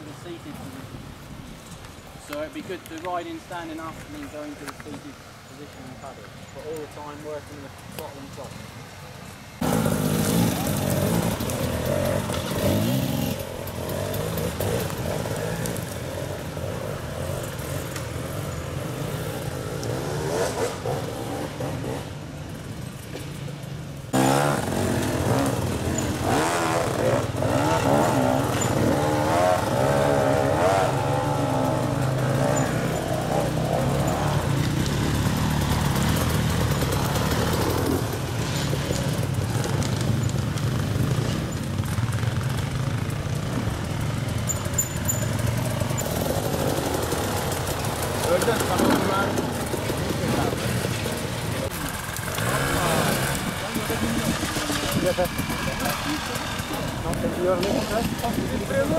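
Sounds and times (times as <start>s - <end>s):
dirt bike engines revving: 0.0s - 58.9s.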